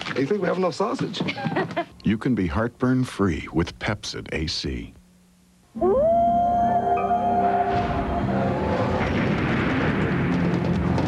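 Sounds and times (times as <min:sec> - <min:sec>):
wolf howling: 0:05.7 - 0:09.1.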